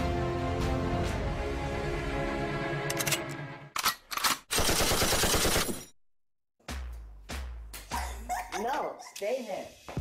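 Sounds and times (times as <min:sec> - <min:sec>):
background music: 0:00.0 - 0:03.8, 0:06.6 - 0:09.1
machine-gun fire: 0:04.5 - 0:05.8.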